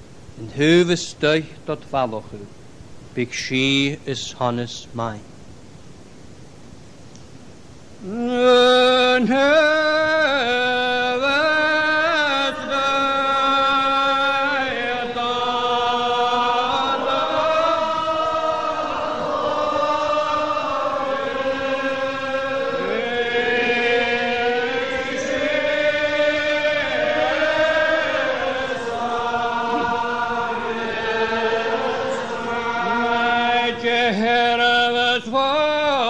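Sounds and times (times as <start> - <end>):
congregation singing a psalm: 8.0 - 36.0.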